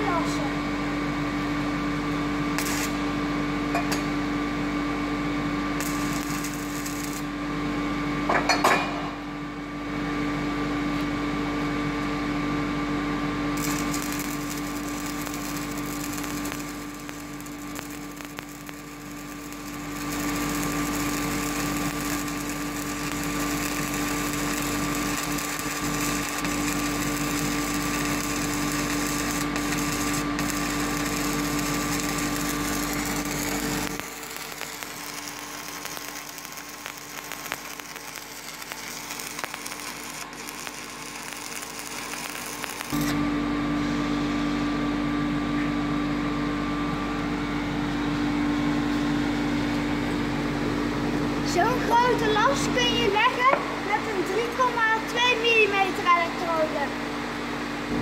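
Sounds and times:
welding arc crackling: 0:02.0 - 0:04.1, 0:05.2 - 0:07.6, 0:13.4 - 0:43.2.

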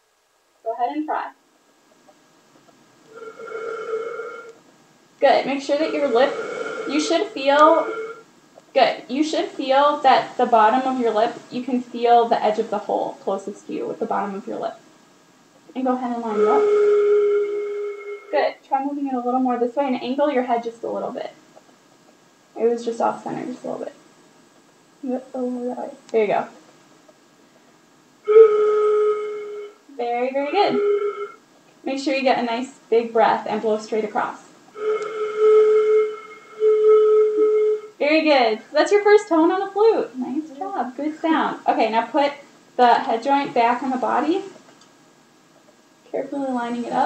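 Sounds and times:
breathy flute tone: 0:03.1 - 0:04.6, 0:05.4 - 0:08.3, 0:16.1 - 0:18.6, 0:28.2 - 0:31.4, 0:34.7 - 0:38.0.

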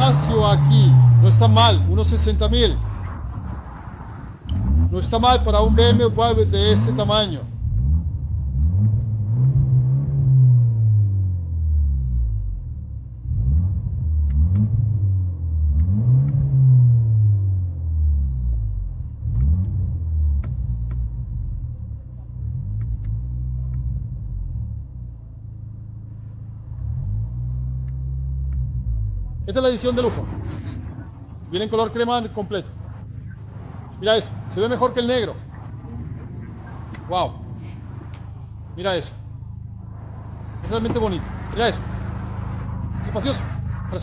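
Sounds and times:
car engine revving: 0:00.0 - 0:44.0.

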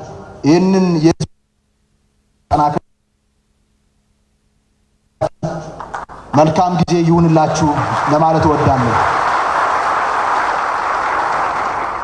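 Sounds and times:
crowd applause: 0:07.6 - 0:12.0.

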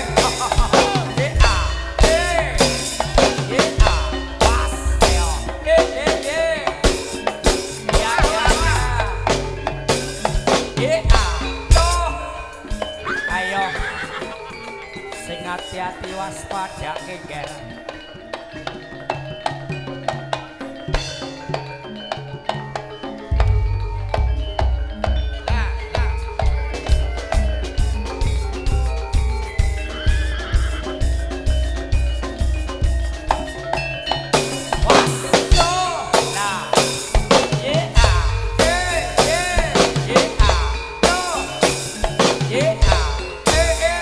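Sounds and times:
deep bass beats: 0:00.0 - 0:06.8, 0:07.9 - 0:12.9, 0:23.3 - 0:30.2, 0:37.2 - 0:41.6
drum strokes: 0:00.0 - 0:17.6, 0:22.4 - 0:44.0
high swooping melody: 0:00.0 - 0:18.8, 0:21.0 - 0:44.0
ringing tuned metal percussion: 0:00.0 - 0:44.0.

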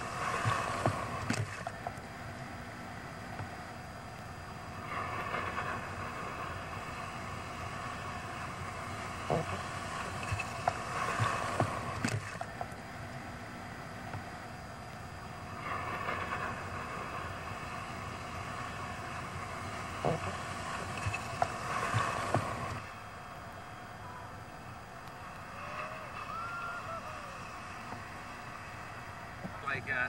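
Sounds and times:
breaking surf and rushing whitewater: 0:00.0 - 0:02.0, 0:04.4 - 0:12.7, 0:14.8 - 0:30.0.

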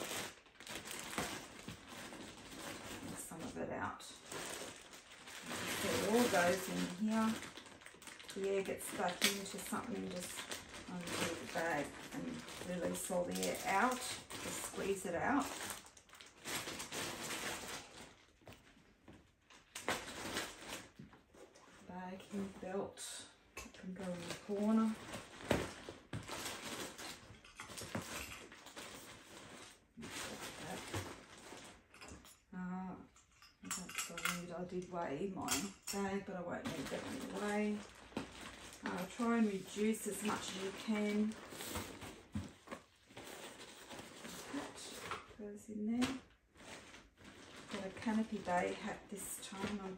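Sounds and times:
plastic bags rustling: 0:00.0 - 0:32.5, 0:35.2 - 0:49.9.

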